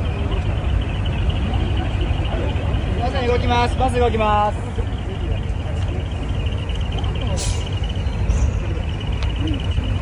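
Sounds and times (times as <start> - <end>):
bus diesel engine rumbling: 0.0 - 10.0.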